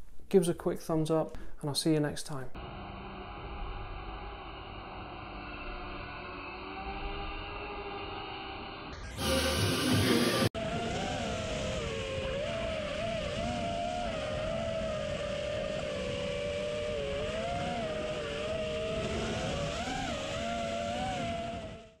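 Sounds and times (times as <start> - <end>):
loud noisy burst: 2.6 - 22.0
quadcopter motors whining: 2.6 - 22.0
wind noise: 10.6 - 21.9.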